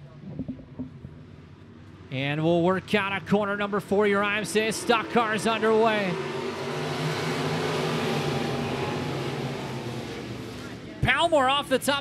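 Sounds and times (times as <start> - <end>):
stock car engines roaring: 1.2 - 12.0.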